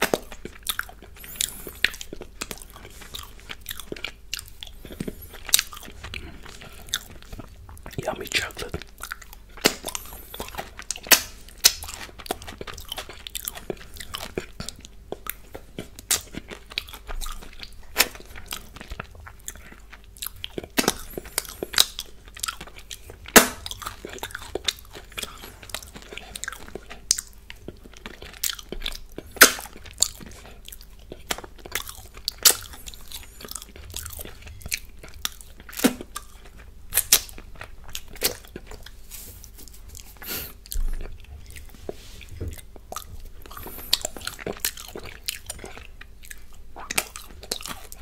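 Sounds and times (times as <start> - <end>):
person chewing with crunches: 0.0 - 48.0.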